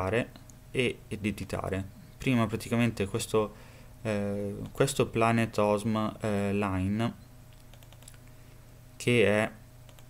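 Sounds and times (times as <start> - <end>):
computer keyboard and mouse clicks: 7.5 - 8.2.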